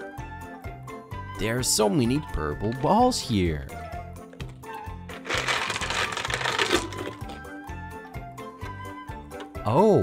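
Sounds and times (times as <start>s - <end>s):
background music: 0.0s - 10.0s
plastic balls clattering onto carpet: 5.2s - 7.4s.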